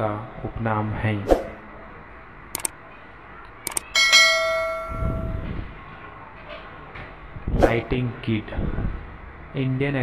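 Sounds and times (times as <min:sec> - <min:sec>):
bell chime: 0:03.8 - 0:05.6.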